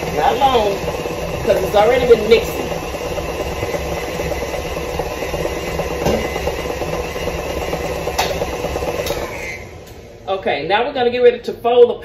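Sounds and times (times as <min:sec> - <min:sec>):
stand mixer running: 0:00.0 - 0:10.3.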